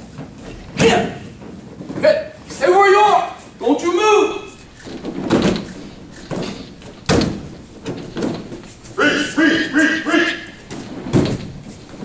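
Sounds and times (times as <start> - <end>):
body thudding on gym mats: 4.6 - 9.0, 10.6 - 12.0
person speaking: 8.8 - 10.6.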